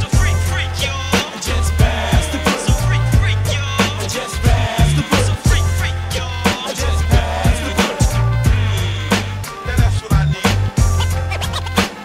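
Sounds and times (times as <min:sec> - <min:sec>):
deep bass line: 0:00.0 - 0:12.0
hip hop beat: 0:00.0 - 0:12.0
punchy drums: 0:00.0 - 0:12.0
turntable scratching: 0:00.0 - 0:12.0.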